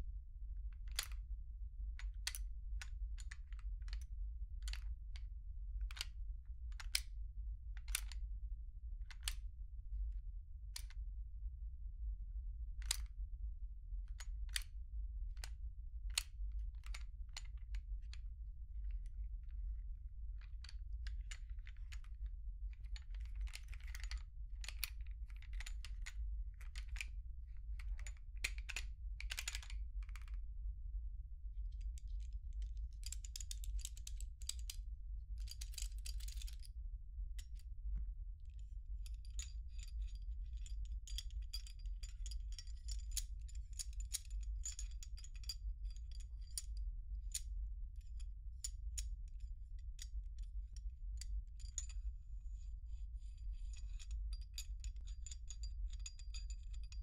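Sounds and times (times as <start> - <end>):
steady low hum: 0.0 - 57.0
metallic clicks of pistol parts: 0.9 - 1.2, 2.1 - 4.9, 5.9 - 6.1, 7.8 - 8.2, 12.8 - 13.1, 14.2 - 14.7, 15.4 - 18.2, 22.8 - 27.1, 27.7 - 30.4, 32.0 - 34.8, 35.4 - 36.7, 38.5 - 57.0
metal parts clicking: 22.9 - 27.1, 35.5 - 36.6, 39.0 - 46.7, 51.2 - 51.9, 53.2 - 57.0.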